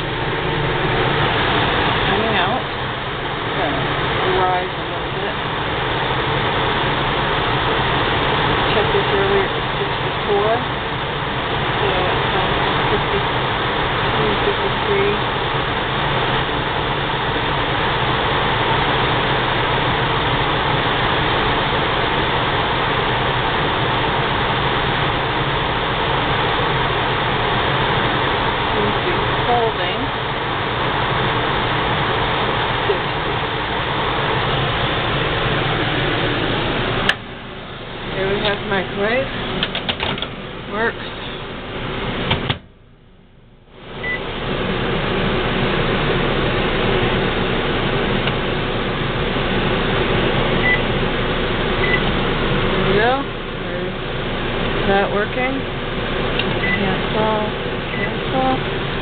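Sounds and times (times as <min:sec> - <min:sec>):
fan rushing air: 0:00.0 - 0:59.0.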